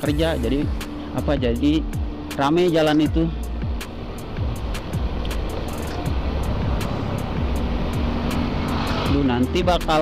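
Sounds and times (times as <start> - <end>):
music with ticking beat: 0.0 - 10.0
motorcycle riding: 3.0 - 10.0.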